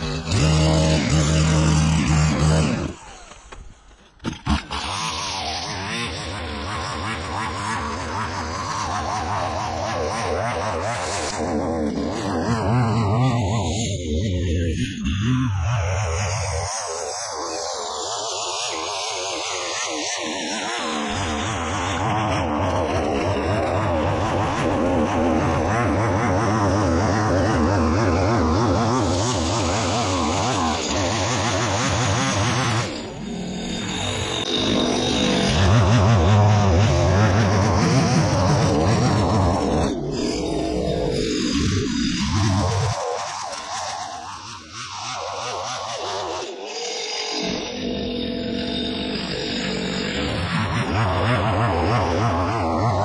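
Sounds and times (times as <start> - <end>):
brushcutter engine running: 0.0 - 9.9, 21.3 - 41.3.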